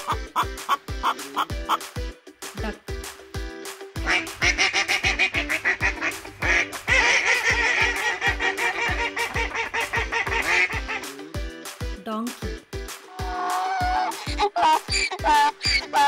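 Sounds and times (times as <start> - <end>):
ducks quacking: 0.0 - 1.9, 4.0 - 11.3, 13.2 - 16.0
background music with steady beat: 0.0 - 16.0.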